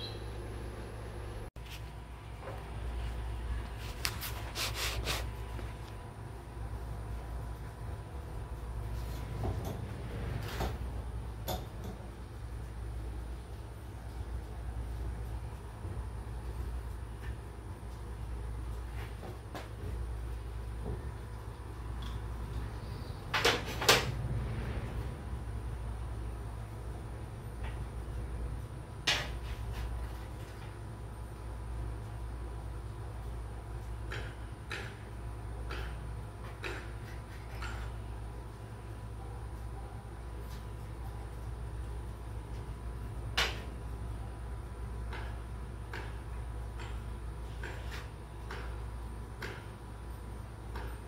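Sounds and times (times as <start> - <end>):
steady low rumble: 24.0 - 29.1.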